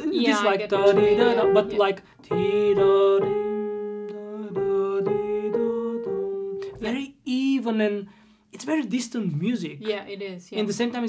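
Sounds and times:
slow piano playing: 0:00.0 - 0:07.1.

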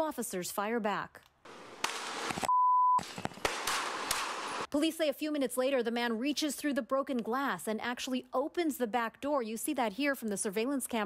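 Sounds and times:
sharp cracks: 0:01.2 - 0:04.7
censor bleep tone: 0:02.5 - 0:03.0.

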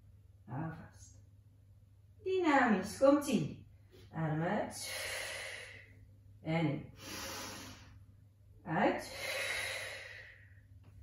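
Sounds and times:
woman exhaling: 0:09.0 - 0:10.6.

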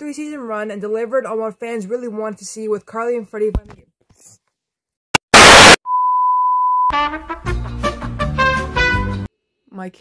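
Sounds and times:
loud tv static burst: 0:05.2 - 0:05.8.

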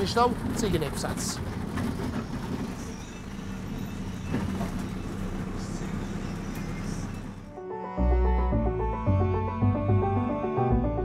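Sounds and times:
bus engine and road noise: 0:00.0 - 0:07.6.

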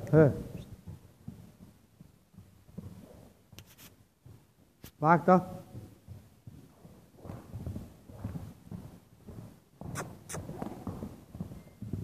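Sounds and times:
muffled hoofbeats on sand: 0:00.0 - 0:12.0
soft scuffing: 0:02.8 - 0:05.0.

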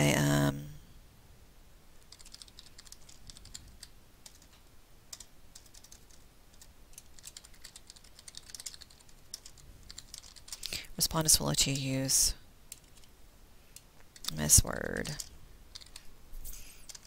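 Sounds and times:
computer keyboard key clicks: 0:15.8 - 0:16.0.

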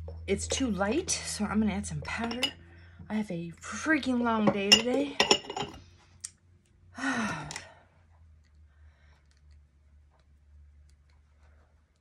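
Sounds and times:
woman sighing: 0:07.0 - 0:07.8.

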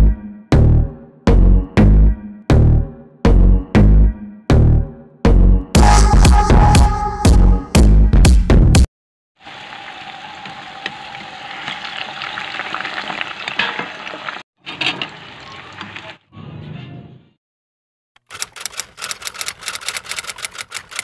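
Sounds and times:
rapid even clicks: 0:18.2 - 0:21.0.

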